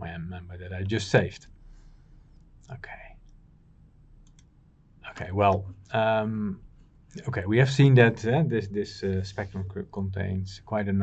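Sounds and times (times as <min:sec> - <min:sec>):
man speaking softly: 0:00.0 - 0:01.4, 0:02.7 - 0:03.2, 0:05.1 - 0:06.6, 0:07.2 - 0:11.0
faint hum: 0:00.0 - 0:11.0.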